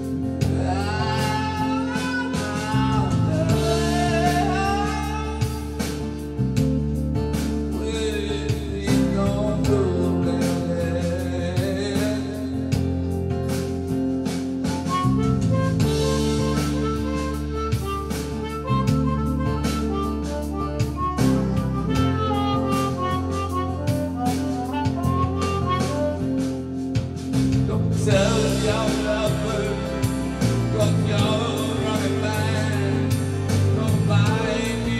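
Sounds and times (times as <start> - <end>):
backing music with drum beat: 0.0 - 34.9
harmonica solo: 14.6 - 34.9.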